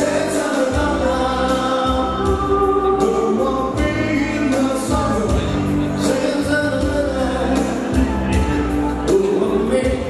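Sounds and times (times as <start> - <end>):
live rock band playing: 0.0 - 10.0
low bass line: 0.0 - 10.0.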